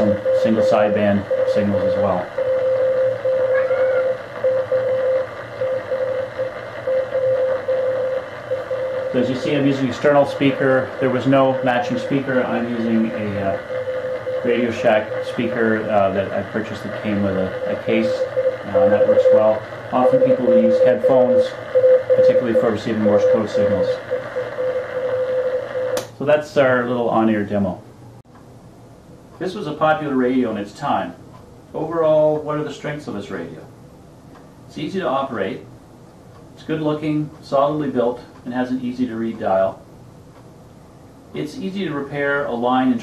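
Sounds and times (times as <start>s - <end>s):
radio band hiss: 0.0s - 2.4s, 7.5s - 24.4s
morse code beeping tone: 0.0s - 26.0s.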